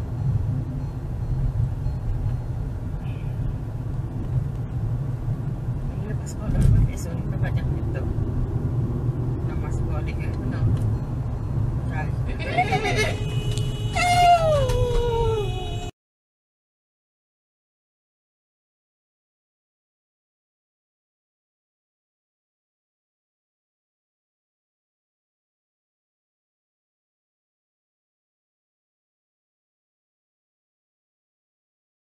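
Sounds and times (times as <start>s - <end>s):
car cabin road and engine rumble: 0.0s - 15.9s
high cries falling in pitch: 12.8s - 15.9s.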